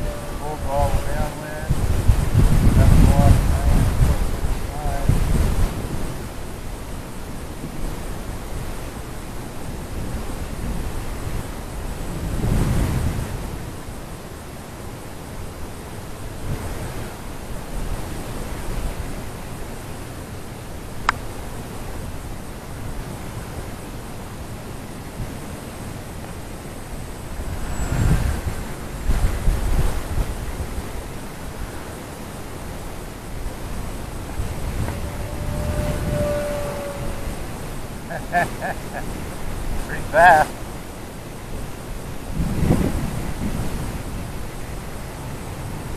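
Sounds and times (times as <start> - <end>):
wind buffeting microphone: 0.0 - 14.2, 15.3 - 45.9
small propeller motor whining: 25.6 - 30.2, 33.1 - 40.4.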